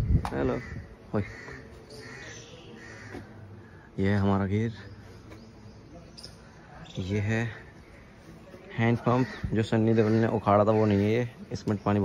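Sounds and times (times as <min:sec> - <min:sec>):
harsh bird calls: 0:00.0 - 0:12.0.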